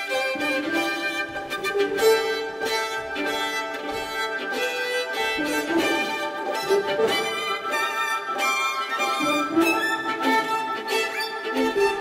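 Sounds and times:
orchestral strings: 0:00.0 - 0:12.0
solo violin melody: 0:00.0 - 0:12.0.

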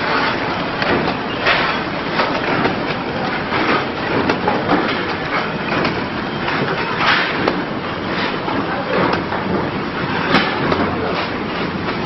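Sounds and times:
packing machine clatter: 0:00.0 - 0:12.0.

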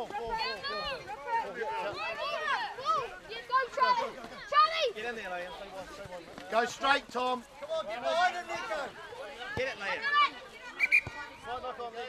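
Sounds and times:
people shouting and calling: 0:00.0 - 0:06.0, 0:06.6 - 0:12.0.

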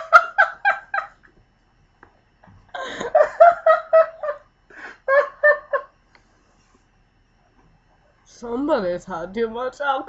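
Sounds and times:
woman laughing: 0:00.0 - 0:01.3, 0:02.7 - 0:05.9.

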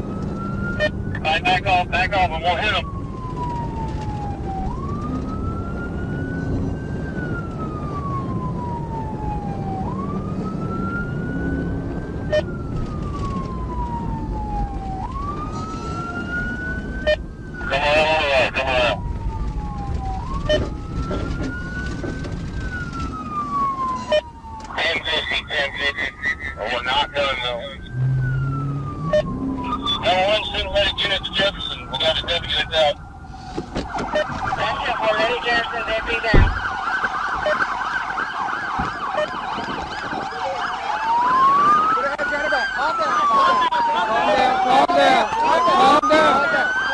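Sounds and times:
car engine and road noise: 0:00.0 - 0:46.9
harsh siren bursts: 0:00.0 - 0:46.9
police siren wailing: 0:00.0 - 0:46.9
sharp thump: 0:36.3 - 0:36.6.

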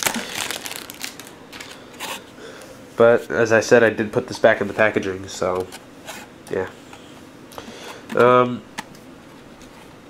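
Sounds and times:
plastic film crinkling: 0:00.0 - 0:01.8.

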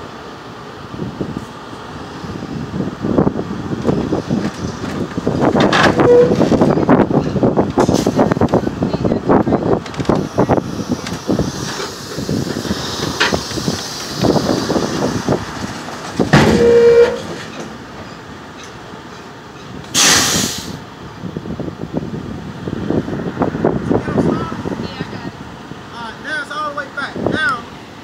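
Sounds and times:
loud squeal: 0:05.8 - 0:06.6, 0:16.3 - 0:17.5
metallic clanks and knocks: 0:16.0 - 0:19.8
burst of hiss: 0:19.9 - 0:20.8.

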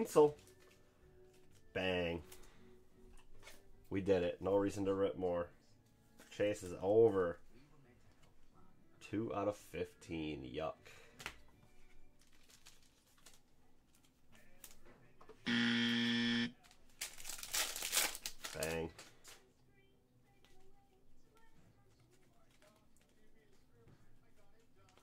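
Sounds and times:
trading cards being handled: 0:11.2 - 0:14.8, 0:16.6 - 0:19.4, 0:21.4 - 0:25.0
electronic buzz tone: 0:15.5 - 0:16.5.

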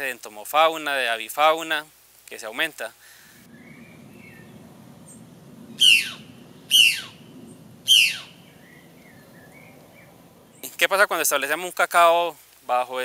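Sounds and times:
faint bird chirps: 0:03.5 - 0:10.8
jay calling harshly: 0:04.0 - 0:10.6.

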